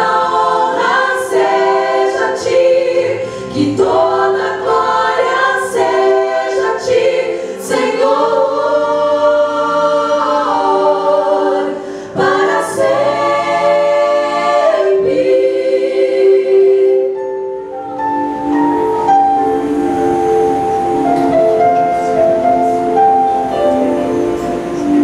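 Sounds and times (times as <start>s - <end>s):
women singing in harmony: 0.0s - 17.6s
singers breathing: 3.2s - 3.6s, 7.3s - 7.6s, 11.8s - 12.2s.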